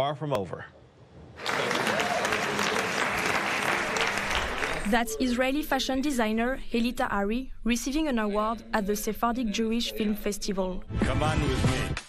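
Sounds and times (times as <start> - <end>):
audience applauding: 1.4 - 5.1.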